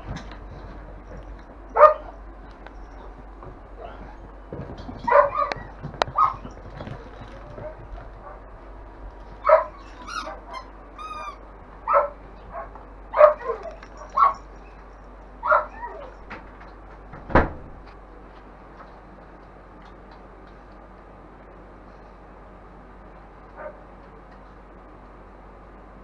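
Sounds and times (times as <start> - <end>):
puppies whining: 5.0 - 8.4, 9.3 - 16.3
puppies yipping and barking: 5.0 - 8.4, 9.4 - 16.3
thump: 17.2 - 17.7.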